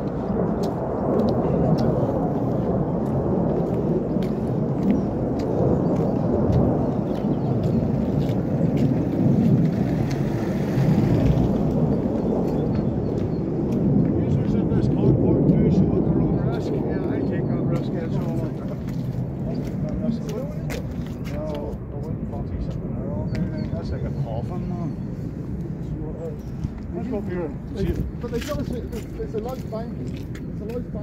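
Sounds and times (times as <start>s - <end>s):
footsteps on pavement: 0.0s - 14.6s, 17.7s - 31.0s
wind buffeting microphone: 0.0s - 31.0s.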